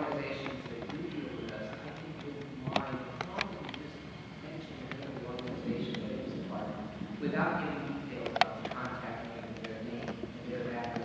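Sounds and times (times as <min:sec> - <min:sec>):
muffled speech in a hall: 0:00.0 - 0:11.0.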